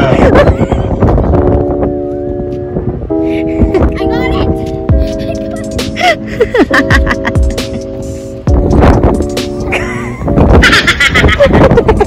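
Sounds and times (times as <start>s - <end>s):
wind buffeting microphone: 0.0s - 12.0s
background music chord: 1.5s - 10.5s.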